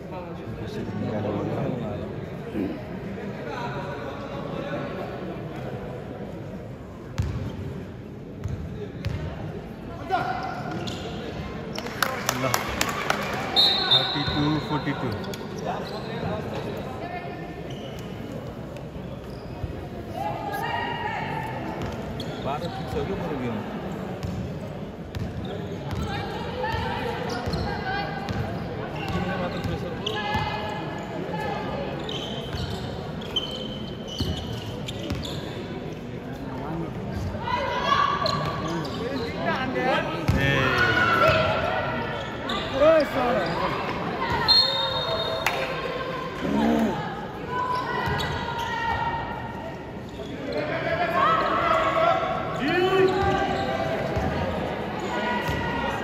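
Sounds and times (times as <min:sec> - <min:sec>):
basketball bouncing on court: 0:07.2 - 0:07.5, 0:08.4 - 0:09.3
voices calling out in gym: 0:08.8 - 0:56.0.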